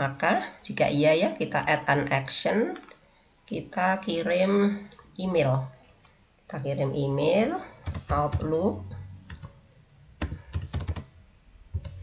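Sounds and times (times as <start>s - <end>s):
computer keyboard typing: 7.8s - 8.5s, 9.3s - 9.6s, 10.2s - 11.1s, 11.8s - 12.0s.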